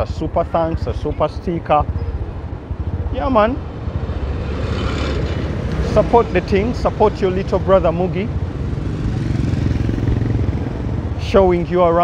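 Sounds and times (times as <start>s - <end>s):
steady low traffic rumble: 0.0s - 12.0s
motor vehicle passing: 1.8s - 11.2s.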